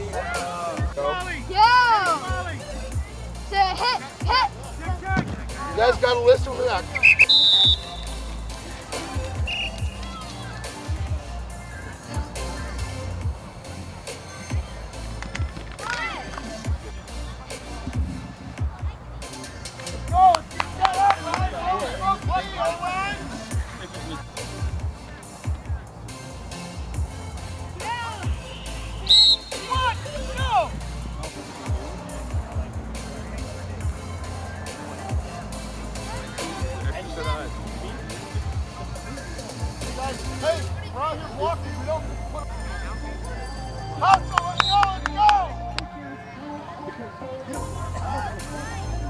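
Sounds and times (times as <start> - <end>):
distant young voices: 0.0 - 49.0
music playing: 0.0 - 49.0
whistle blast: 6.9 - 8.4, 9.4 - 10.1, 28.1 - 30.1, 44.3 - 45.2.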